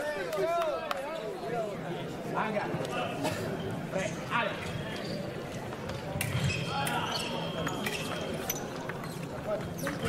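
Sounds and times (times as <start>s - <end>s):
rumble of large hall: 0.0s - 10.0s.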